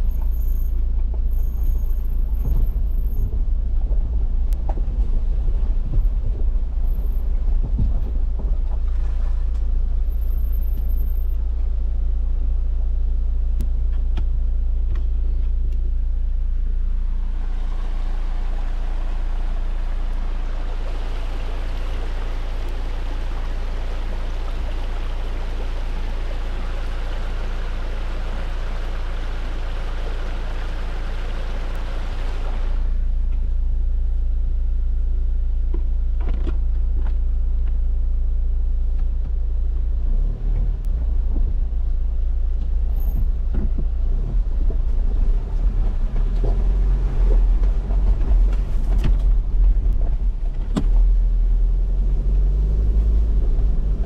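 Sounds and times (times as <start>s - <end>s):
engine rumble inside cabin: 0.0s - 54.0s
creek running over rocks: 17.0s - 33.1s, 44.0s - 54.0s.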